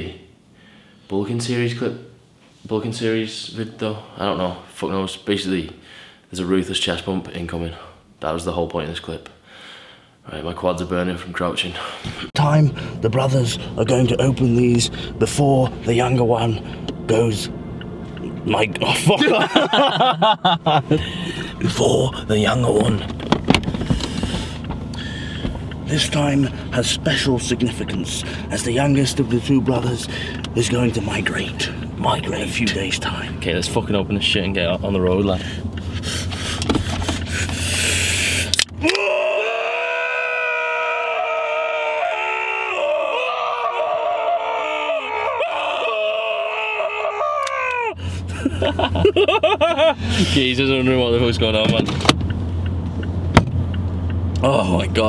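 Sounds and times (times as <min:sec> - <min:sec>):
low hum inside car: 0:12.3 - 0:55.0
sharp knocks and clicks: 0:22.8 - 0:25.8, 0:36.6 - 0:37.6, 0:51.6 - 0:54.4.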